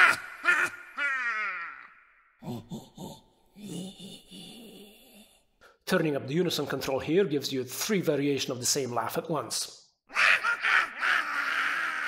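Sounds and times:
woman's evil laugh: 0.0s - 1.9s, 10.1s - 12.0s.

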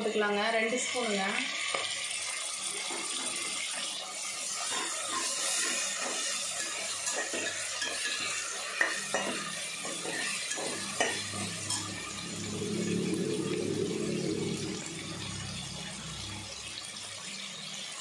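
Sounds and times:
food sizzling in oil: 0.0s - 18.0s
metal spatula scraping pot: 2.7s - 16.4s.

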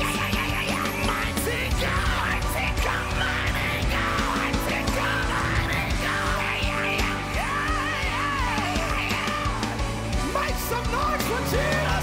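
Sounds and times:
drum beat: 0.0s - 12.0s
heavy bass: 0.0s - 12.0s
live band playing gospel: 0.0s - 12.0s.

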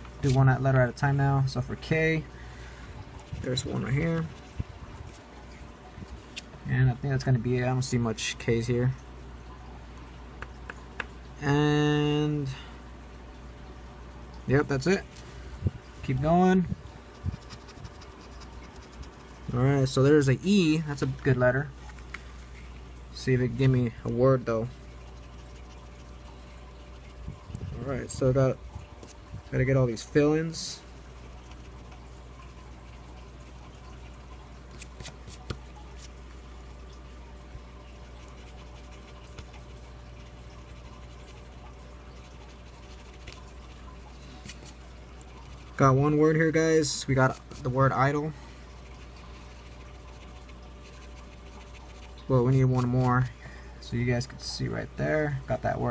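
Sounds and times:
low hum: 12.0s - 55.9s
scratch-off ticket being scraped: 34.7s - 36.1s.

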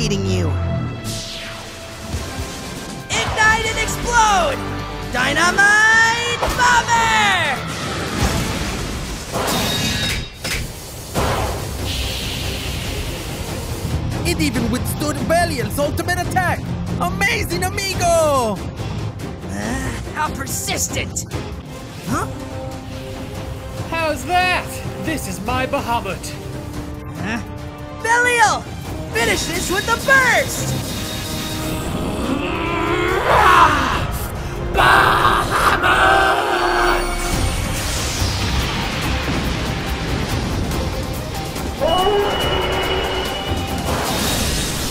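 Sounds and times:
background music: 0.0s - 44.9s
long drawn-out cry: 32.0s - 37.1s.

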